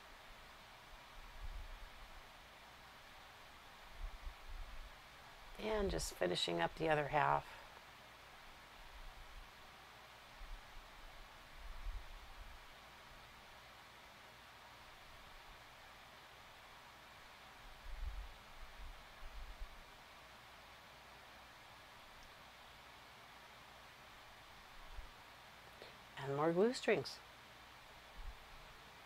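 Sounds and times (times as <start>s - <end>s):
faint hiss: 0.0s - 29.0s.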